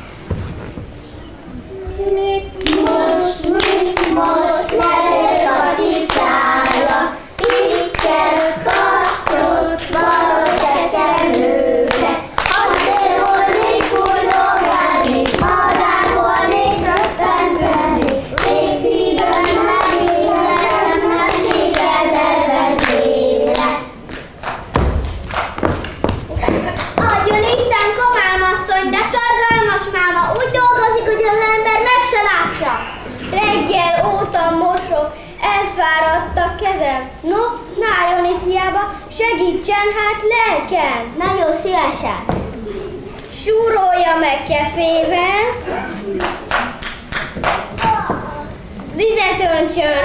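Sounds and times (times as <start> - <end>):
children singing: 1.7 - 24.0
hands clapping: 2.6 - 21.9, 22.8 - 27.6, 46.2 - 48.2
knocks: 24.7 - 27.4.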